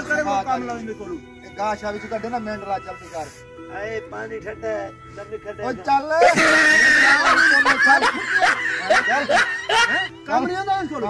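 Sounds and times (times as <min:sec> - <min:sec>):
loud human laughter: 0:06.2 - 0:10.1
shrill high-pitched cries: 0:06.2 - 0:10.1.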